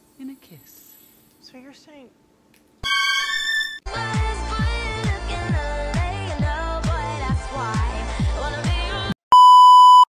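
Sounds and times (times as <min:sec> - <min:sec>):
pop song with bass drum: 0:03.9 - 0:09.2.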